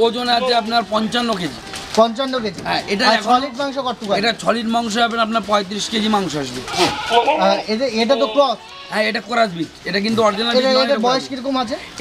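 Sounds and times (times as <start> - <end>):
men's voices: 0.0 - 12.0
goat bleating: 0.2 - 0.9, 6.5 - 9.3.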